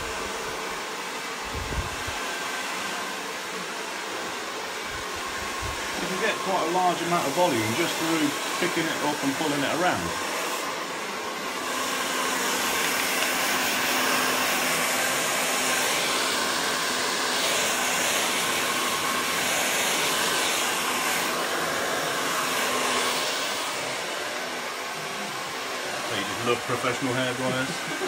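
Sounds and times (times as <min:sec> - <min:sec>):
hair dryer blowing: 0:00.0 - 0:28.0.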